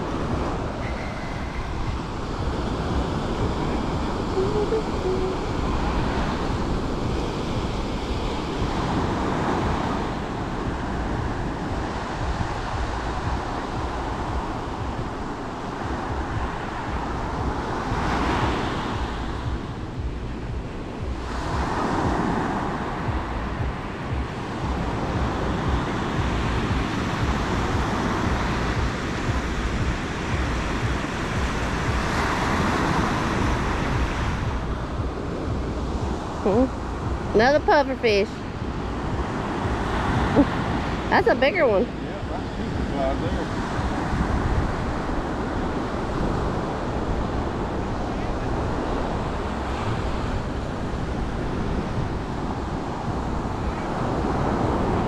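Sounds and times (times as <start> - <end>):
ocean surf breaking: 0.0 - 55.0
wind rumbling on microphone: 0.0 - 55.0.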